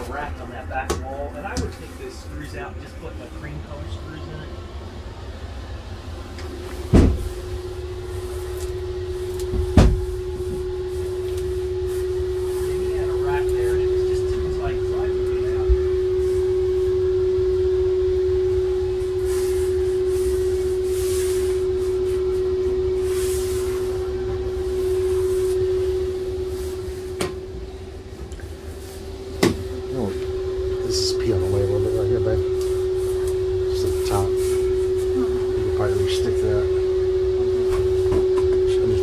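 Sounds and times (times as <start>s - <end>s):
steady hum: 0.0s - 39.0s.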